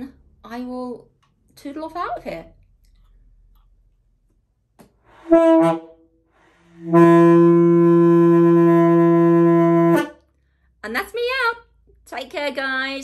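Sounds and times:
alto saxophone notes: 5.2s - 10.2s.

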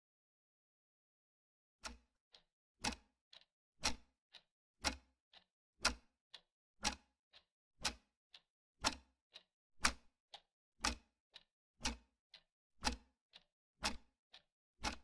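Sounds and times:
clock ticking: 1.8s - 15.0s.

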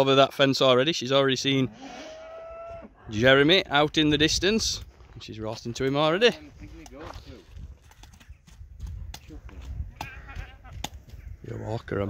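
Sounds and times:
farm animal calling: 1.7s - 3.1s, 10.0s - 11.3s.

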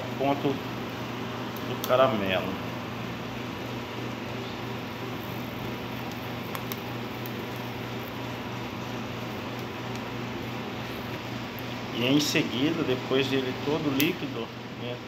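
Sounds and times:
fan humming and hissing: 0.0s - 15.0s.

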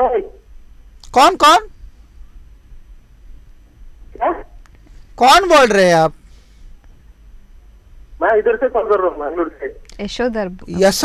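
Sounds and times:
person speaking over telephone: 0.0s - 0.4s, 4.2s - 4.5s, 8.2s - 9.8s
low background hum: 0.0s - 11.0s.

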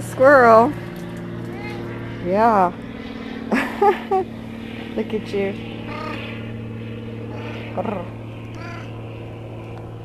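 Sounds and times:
steady low hum: 0.0s - 10.0s
cat meowing: 1.5s - 1.9s, 5.9s - 6.2s, 8.6s - 8.9s.

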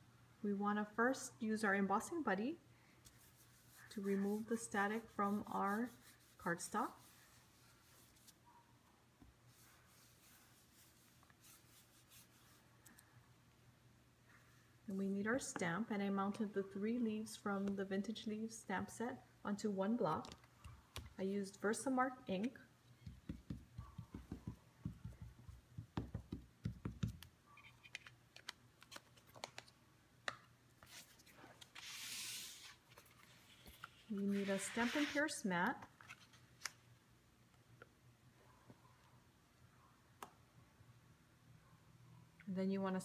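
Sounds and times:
cloth rubbing on cardstock: 3.2s - 8.4s, 9.5s - 12.6s, 31.8s - 32.8s, 33.5s - 35.4s
ink pad tapping on stamp: 23.0s - 27.2s
mat sliding hiss: 31.7s - 32.9s, 34.0s - 35.4s.

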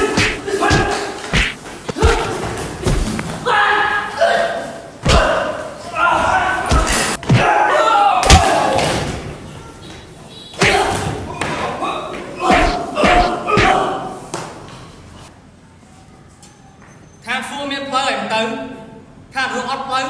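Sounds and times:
thuds of punches and kicks: 0.0s - 3.4s, 5.0s - 5.4s, 6.6s - 7.6s, 10.6s - 11.7s, 12.4s - 13.9s
men grunting and shouting: 0.0s - 8.9s, 10.6s - 14.3s.

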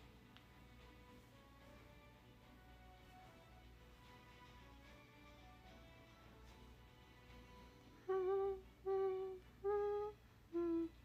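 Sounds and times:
faint background music: 0.0s - 11.0s
woman humming: 8.0s - 11.0s.

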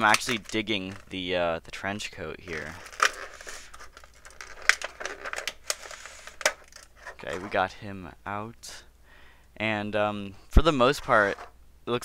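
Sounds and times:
plastic packaging crinkling: 0.0s - 1.2s, 2.5s - 7.5s.

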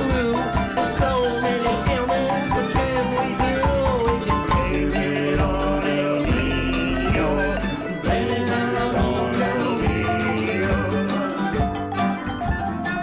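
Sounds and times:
drums keeping a steady beat: 0.0s - 13.0s
fiddle: 0.0s - 13.0s
keyboard: 0.0s - 13.0s
strummed acoustic guitar: 0.0s - 13.0s
upright bass: 0.0s - 13.0s.

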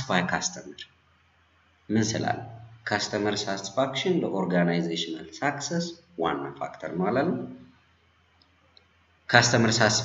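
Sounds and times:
man speaking: 0.0s - 0.9s, 1.9s - 7.6s, 9.3s - 10.0s
faint room hiss: 0.0s - 10.0s.

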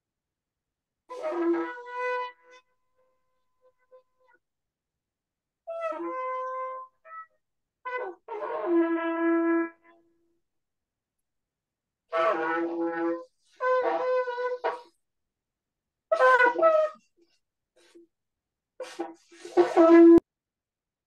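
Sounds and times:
shofar blasts: 12.1s - 14.9s.

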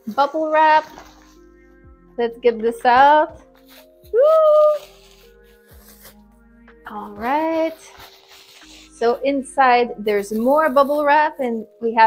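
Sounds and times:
bubble wrap rustling: 0.0s - 1.4s, 3.4s - 6.3s, 6.9s - 9.2s, 10.0s - 11.7s
quiet background music: 0.0s - 12.0s.

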